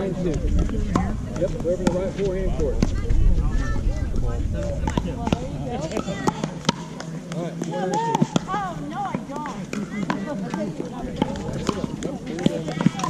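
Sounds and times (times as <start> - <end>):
people talking: 0.0 - 13.0
paddles hitting plastic ball: 4.8 - 13.0.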